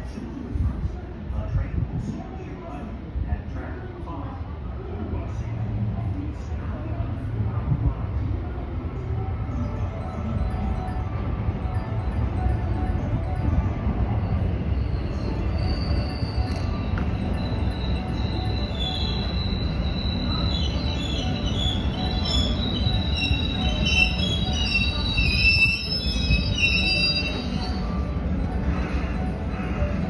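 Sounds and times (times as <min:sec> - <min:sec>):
train rumble: 0:00.0 - 0:30.0
brake and wheel squeals: 0:14.1 - 0:29.9.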